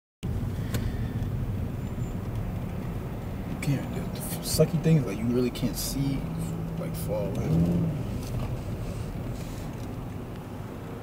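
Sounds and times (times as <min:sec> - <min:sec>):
car engine and road noise: 0:00.2 - 0:11.0.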